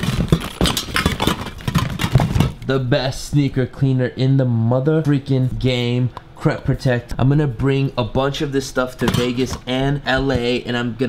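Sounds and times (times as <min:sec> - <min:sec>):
cans and cases clattering: 0:00.0 - 0:02.6.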